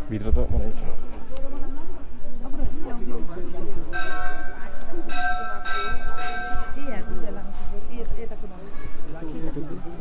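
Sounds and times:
temple bell ringing: 3.8 - 7.6.

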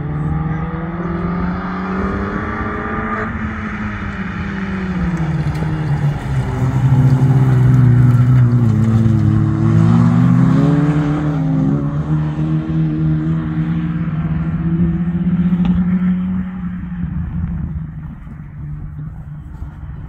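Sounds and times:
race car engines revving: 0.0 - 20.0.

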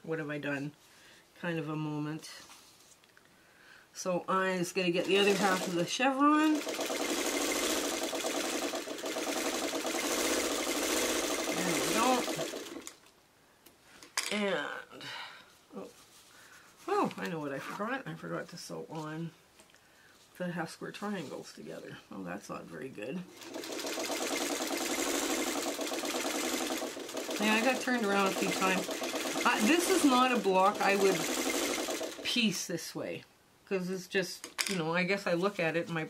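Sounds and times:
sewing machine running: 4.9 - 13.0, 23.3 - 32.3.

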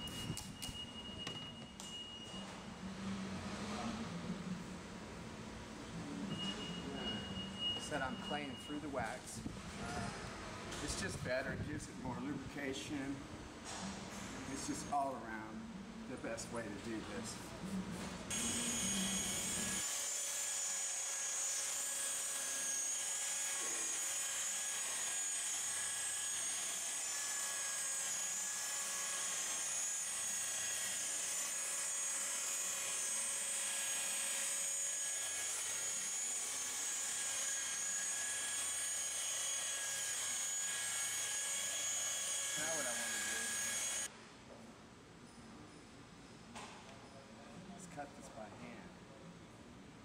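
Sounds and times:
polisher motor whining: 18.3 - 44.1.

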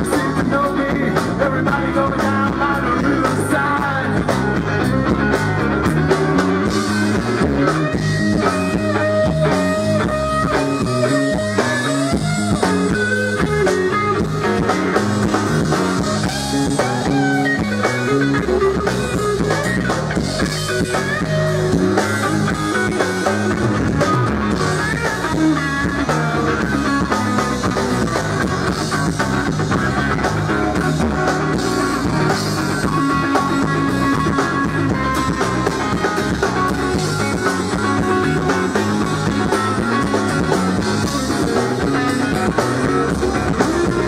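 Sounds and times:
bass guitar: 0.0 - 44.0
drum kit: 0.0 - 44.0
electric guitar with bent notes: 0.0 - 44.0.

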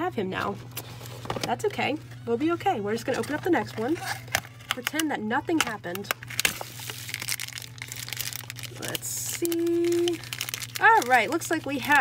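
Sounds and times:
plastic wrapper crinkling: 6.0 - 12.0.

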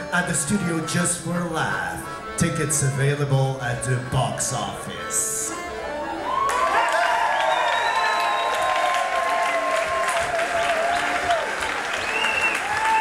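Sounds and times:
audience applauding: 6.2 - 13.0.

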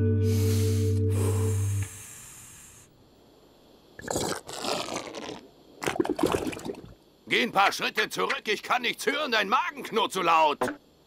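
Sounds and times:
cartoon stomach growl: 4.0 - 6.8.

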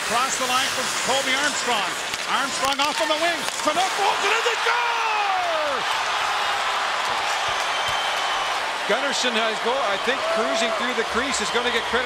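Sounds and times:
sportscaster calling a goal: 0.0 - 5.8
arena crowd noise: 0.0 - 12.0.

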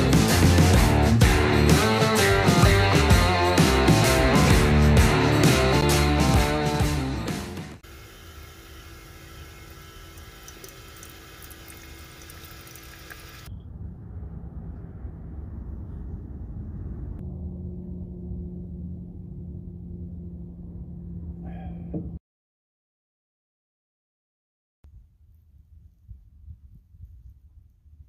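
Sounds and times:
coffee machine humming: 7.8 - 13.5
steady low hum: 7.8 - 22.2
coffee pouring into mug: 8.2 - 13.5
low rumble: 13.5 - 22.2.

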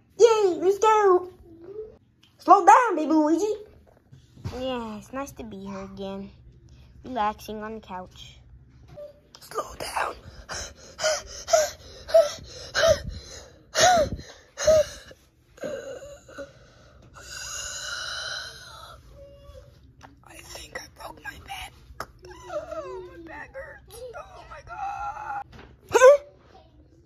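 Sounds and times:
child whimpering: 10.5 - 16.5, 22.2 - 26.3.

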